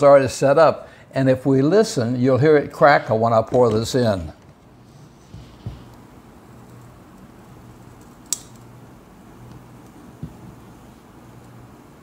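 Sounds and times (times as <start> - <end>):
caramel cracking: 6.6 - 8.8.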